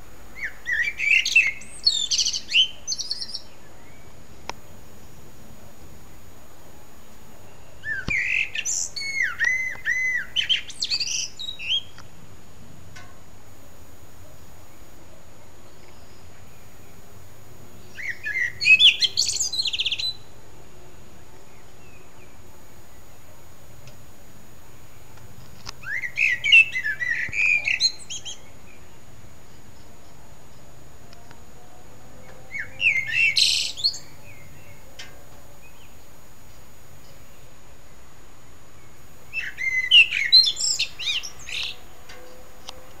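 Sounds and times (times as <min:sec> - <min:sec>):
songbird singing: 0:00.0 - 0:43.0.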